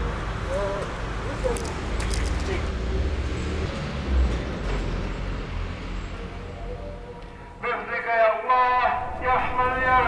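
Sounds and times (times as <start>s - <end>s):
street noise rumble: 0.0s - 10.0s.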